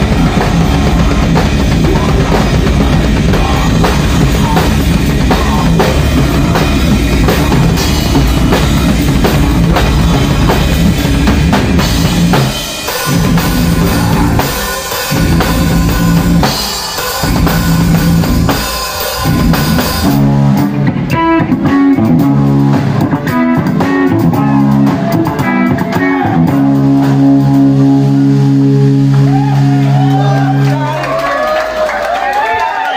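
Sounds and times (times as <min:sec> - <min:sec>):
electric guitars ringing chords: 0:00.0 - 0:31.0
drum kit playing: 0:00.0 - 0:31.2.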